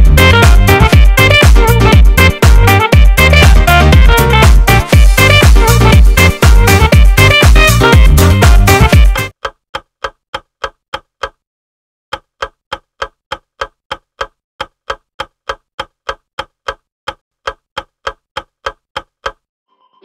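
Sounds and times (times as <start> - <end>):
timer ticking like a clock: 0.0 - 11.4, 12.1 - 19.5.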